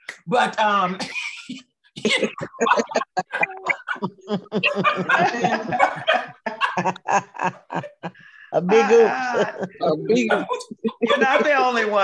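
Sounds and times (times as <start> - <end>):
women laughing: 2.1 - 12.0.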